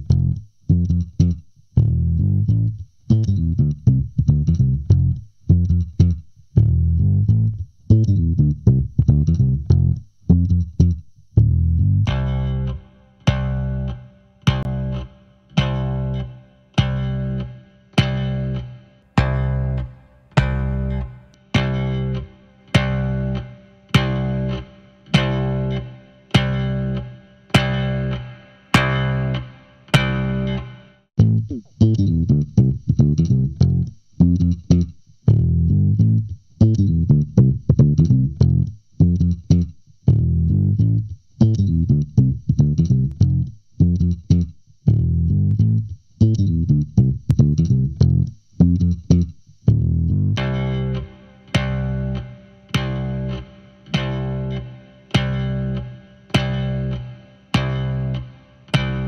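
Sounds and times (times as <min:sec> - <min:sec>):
electric bass guitar line: 0:00.0 - 0:59.0.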